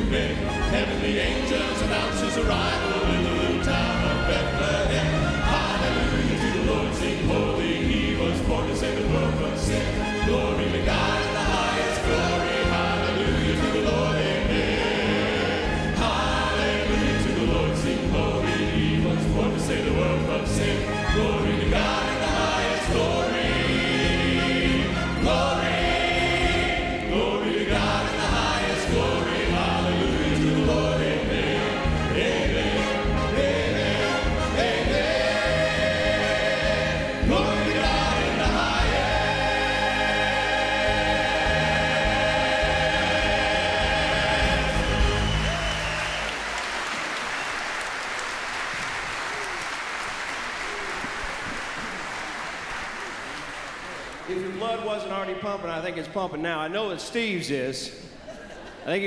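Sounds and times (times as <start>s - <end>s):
men singing into microphones: 0.0s - 46.0s
instrumental accompaniment: 0.0s - 46.6s
choir singing gospel song: 0.0s - 47.5s.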